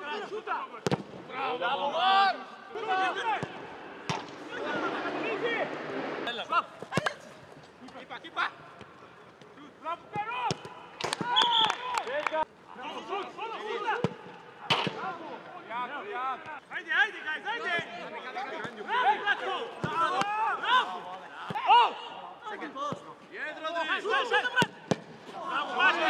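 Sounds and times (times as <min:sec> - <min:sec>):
players shouting: 0:00.0 - 0:08.6, 0:10.0 - 0:22.8, 0:23.5 - 0:26.0.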